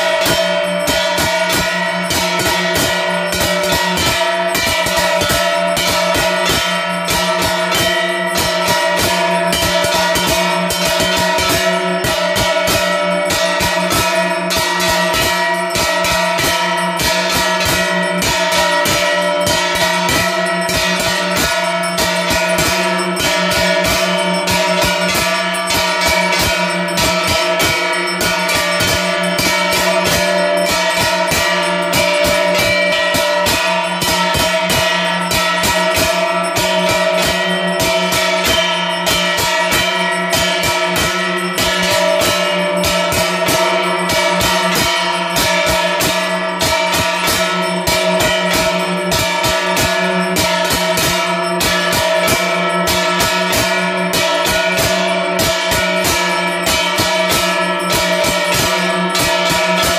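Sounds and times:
brass hand bell ringing: 0.0 - 59.9.

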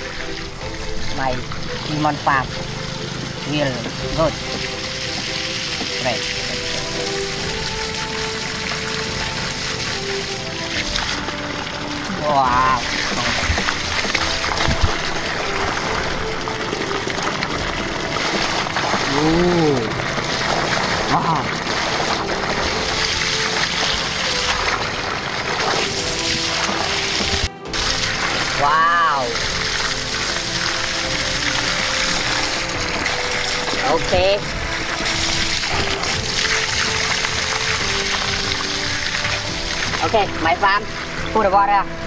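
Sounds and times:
background music: 0.0 - 42.0
water gushing from pipe: 0.0 - 42.0.

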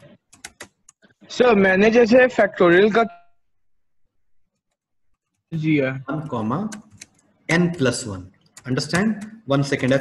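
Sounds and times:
computer keyboard keystrokes: 0.0 - 1.0, 6.7 - 7.2, 8.5 - 10.0.

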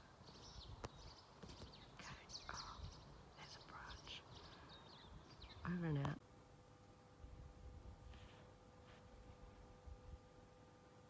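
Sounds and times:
small birds chirping: 0.0 - 6.2.

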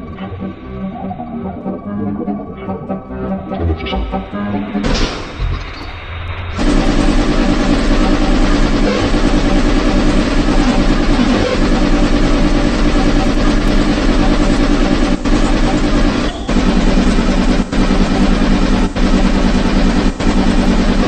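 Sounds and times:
distorted hardcore electronic music: 0.0 - 21.0.

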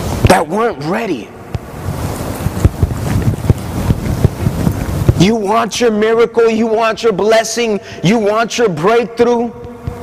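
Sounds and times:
microphone rushing noise: 1.4 - 6.0
low microphone thumps: 1.5 - 5.4, 9.5 - 10.0.

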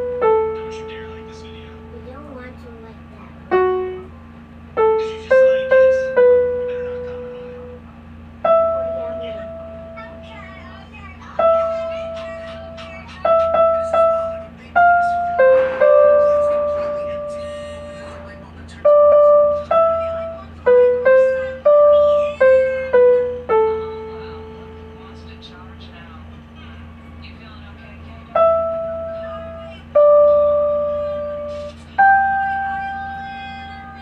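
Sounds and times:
electronic keyboard notes: 0.0 - 2.5, 8.4 - 10.6, 28.4 - 34.0
steady low hum: 0.0 - 34.0
electronic keyboard note: 8.4 - 10.6, 11.4 - 18.1.

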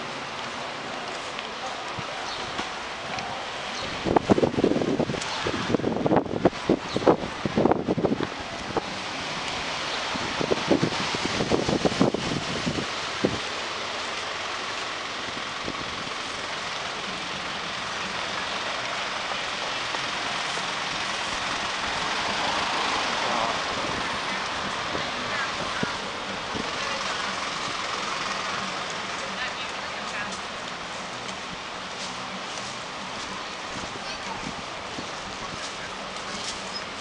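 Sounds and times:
cars and bus passing: 0.0 - 37.0.

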